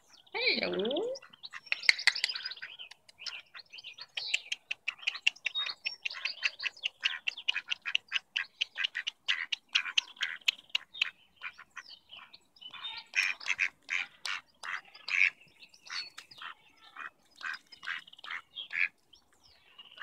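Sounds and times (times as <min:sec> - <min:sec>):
ducks quacking: 0:04.2 - 0:19.0.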